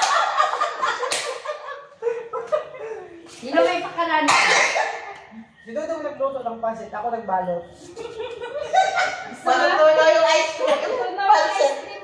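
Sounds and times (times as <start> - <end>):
people laughing: 0.0 - 3.8, 7.8 - 12.0.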